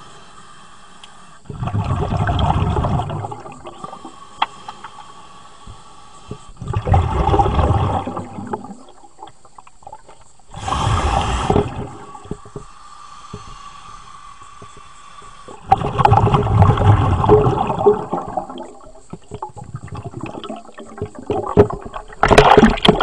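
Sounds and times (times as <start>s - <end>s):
steady air hiss: 0.0s - 1.5s, 3.7s - 6.6s, 10.3s - 15.8s
diver breathing through regulator: 0.0s - 1.6s, 3.7s - 6.8s, 10.5s - 16.9s
underwater bubble bursts: 1.5s - 4.0s, 6.6s - 12.6s, 15.5s - 23.0s.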